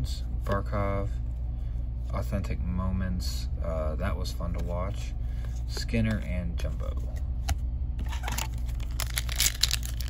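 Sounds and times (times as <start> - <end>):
wrapper crinkling and tearing: 8.1 - 10.0.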